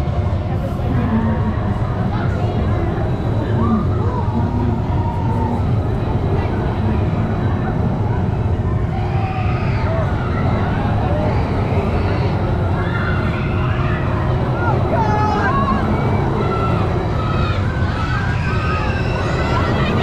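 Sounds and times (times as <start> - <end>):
amusement ride rumbling: 0.0 - 20.0
crowd voices: 0.0 - 20.0.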